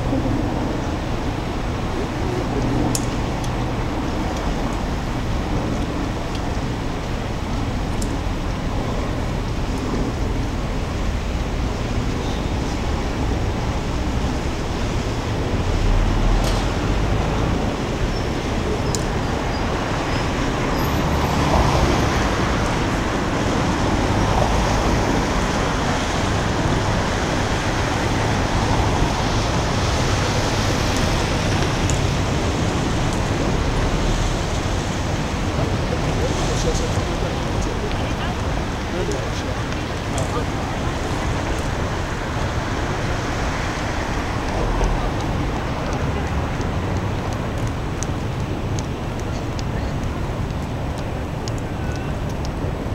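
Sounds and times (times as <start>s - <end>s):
city road traffic rumble: 0.0s - 52.9s.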